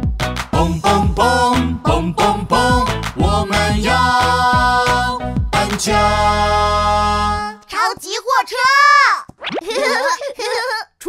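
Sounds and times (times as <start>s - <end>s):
high-pitched cartoon voice: 7.8s - 11.0s.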